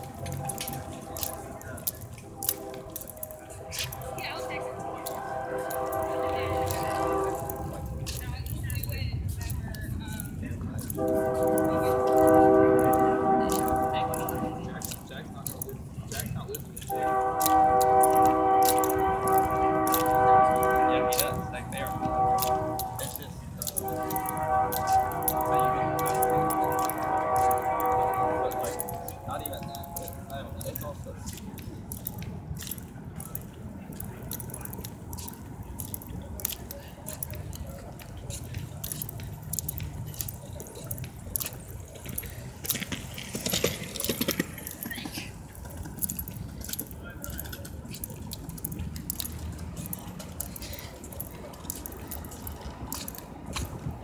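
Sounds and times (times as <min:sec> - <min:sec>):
locomotive air horn blast: 0:00.0 - 0:08.3, 0:10.8 - 0:15.6, 0:16.8 - 0:31.0
footsteps on pavement: 0:00.0 - 0:54.0
steady low rumble: 0:00.0 - 0:54.0.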